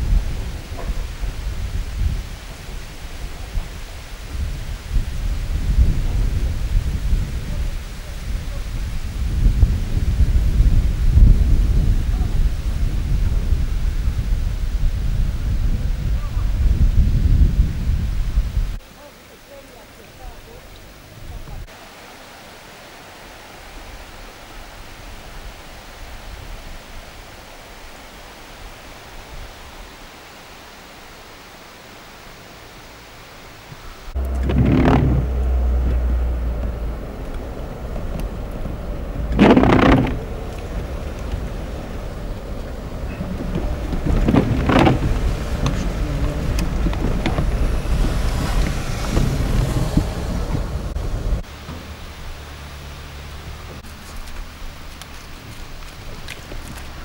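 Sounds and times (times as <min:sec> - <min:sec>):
car cabin noise on rough road: 0:00.0 - 0:18.9, 0:32.1 - 0:57.0
water running across road: 0:00.0 - 0:57.0.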